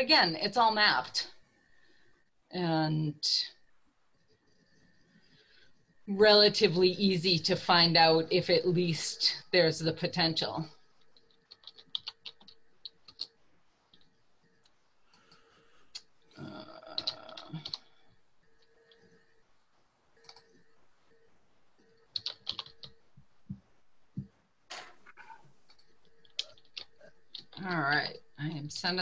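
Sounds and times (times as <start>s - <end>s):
keyboard typing: 11.0s - 18.0s, 18.6s - 19.3s, 20.2s - 21.2s, 21.8s - 27.6s.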